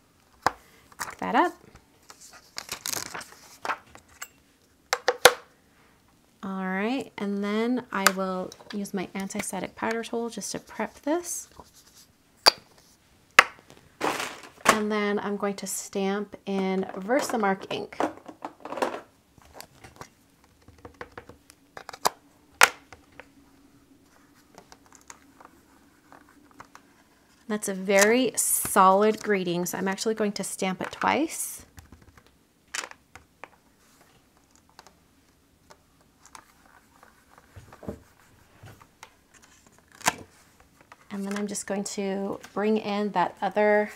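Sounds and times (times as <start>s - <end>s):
faint steady hum: 0.0s - 43.9s.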